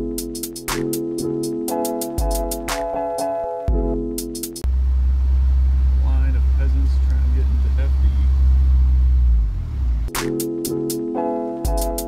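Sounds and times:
background music: 0.0s - 4.8s, 10.1s - 12.0s
car cabin road and engine drone: 4.6s - 10.3s.

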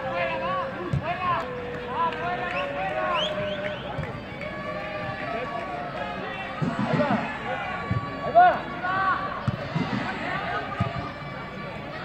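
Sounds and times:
players and spectators shouting: 0.0s - 12.0s
stadium background noise: 0.0s - 12.0s.

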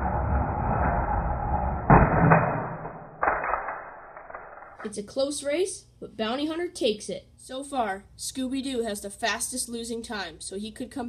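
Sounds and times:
toy cars crashing clatter: 2.1s - 4.9s.

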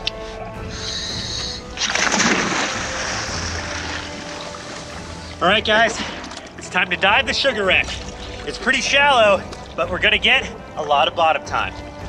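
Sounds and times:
background music: 0.0s - 12.0s
diver splashing into water: 1.7s - 7.0s
bubbling water: 1.8s - 9.9s.

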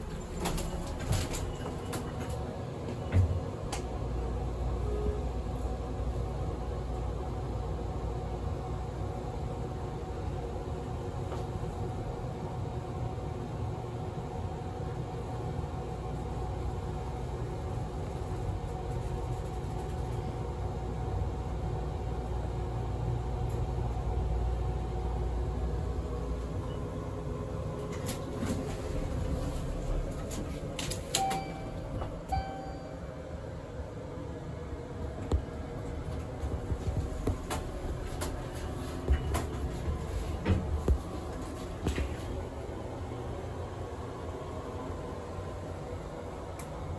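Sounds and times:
elevator low rumble: 0.0s - 46.9s.

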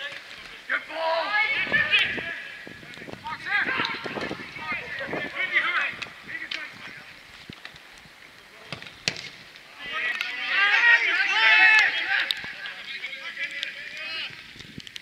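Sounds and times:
players shouting: 0.0s - 7.2s, 9.6s - 14.4s.

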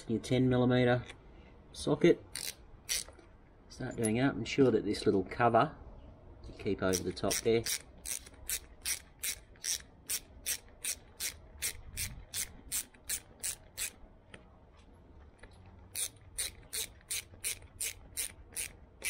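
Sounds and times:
socket ratchet clicking: 2.3s - 3.2s, 6.9s - 14.0s, 15.9s - 19.0s.

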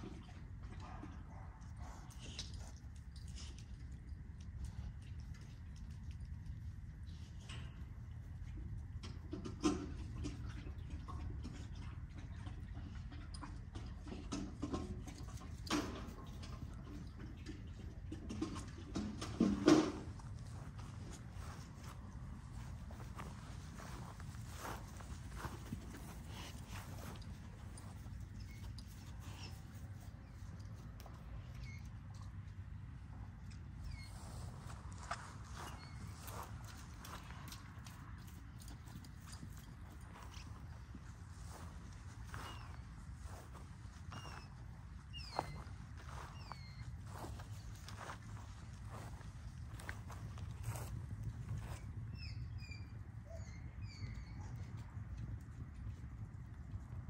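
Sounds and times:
light clicks and rustles: 1.8s - 51.9s
dog moving on grass: 20.2s - 30.1s, 38.9s - 51.8s.

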